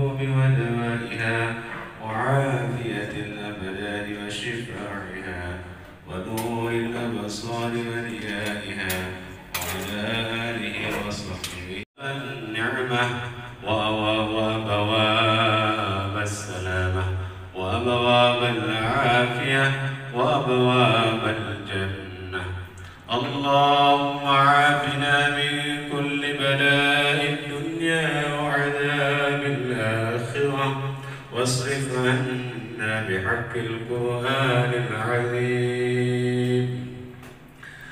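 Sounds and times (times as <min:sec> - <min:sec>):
man chanting prayer over loudspeakers: 0:00.0 - 0:37.0.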